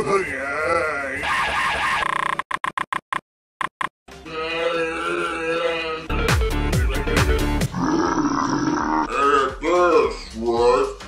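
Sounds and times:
edited music: 6.1 - 7.7
long rough grunt-like noise: 7.6 - 9.5.

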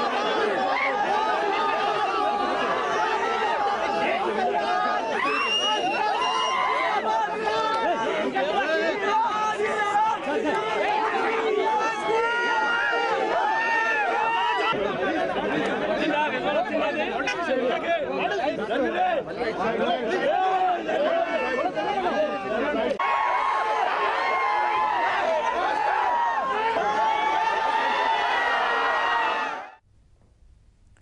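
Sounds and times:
crowd chatter: 0.0 - 29.7.

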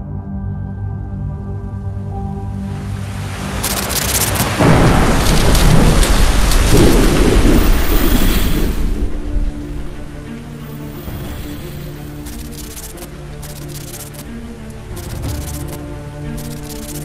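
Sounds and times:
thunder rumble and rain: 2.6 - 13.1.

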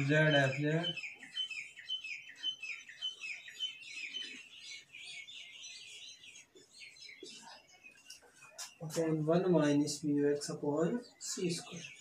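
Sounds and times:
small bird chirping: 0.0 - 12.0.

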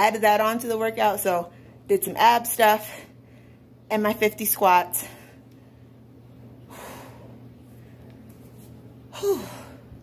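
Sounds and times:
faint room hum: 0.0 - 10.0
woman breathing hard: 6.6 - 8.1, 9.1 - 10.0.

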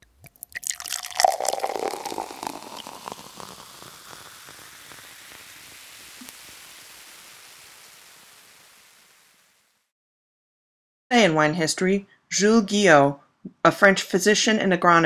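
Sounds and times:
liquid pouring and fizzing: 0.0 - 9.7.

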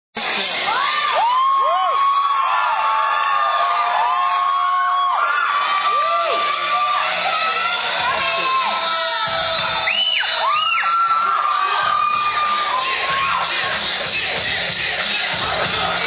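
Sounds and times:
audience cheering and screaming: 0.5 - 16.0.

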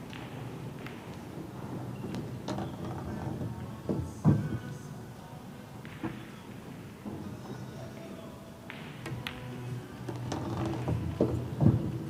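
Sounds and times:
pool balls clicking: 0.0 - 4.8, 5.8 - 12.0.

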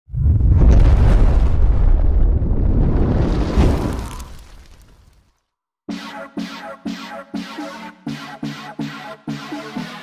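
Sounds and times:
explosion and fire sound effect: 0.1 - 5.3.

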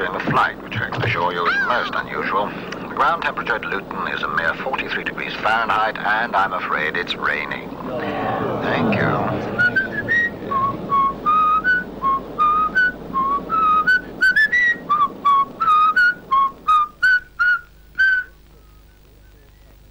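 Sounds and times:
person whistling a tune: 9.5 - 19.5.

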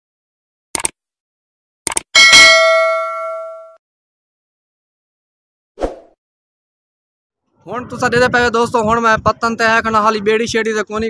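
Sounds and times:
bright bell ding: 2.2 - 3.8.

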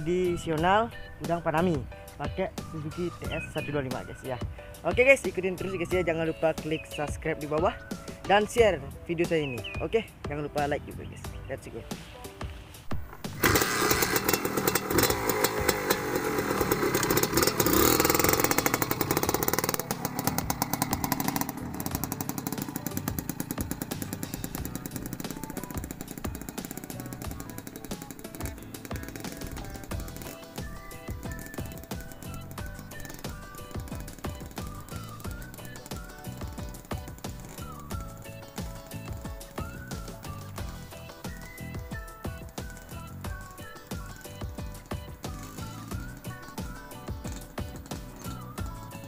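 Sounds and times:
motorcycle engine revving: 12.9 - 49.0.

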